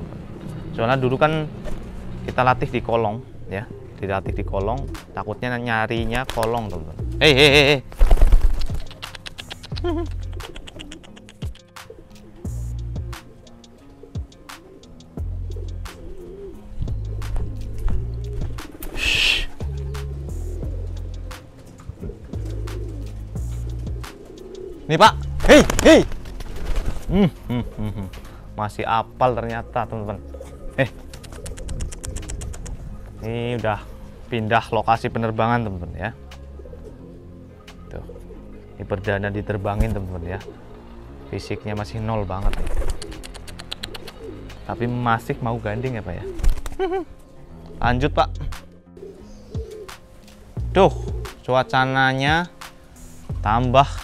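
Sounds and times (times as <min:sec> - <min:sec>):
pigeons cooing: 0:00.0 - 0:54.0
pigeon wings clapping: 0:06.0 - 0:06.8, 0:07.9 - 0:12.3, 0:17.2 - 0:20.2, 0:21.3 - 0:23.2, 0:25.4 - 0:27.2, 0:30.8 - 0:32.8, 0:42.4 - 0:44.7, 0:46.3 - 0:47.0, 0:49.6 - 0:50.5.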